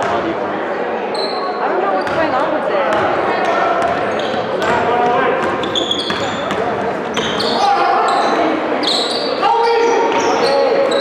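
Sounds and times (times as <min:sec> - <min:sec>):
voices echoing in gym: 0:00.0 - 0:11.0
basketballs bouncing on wooden floor: 0:02.0 - 0:02.3, 0:02.9 - 0:07.4.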